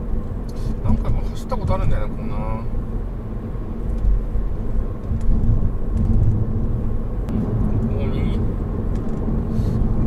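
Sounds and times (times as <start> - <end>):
road and engine rumble in a car: 0.0 - 10.0.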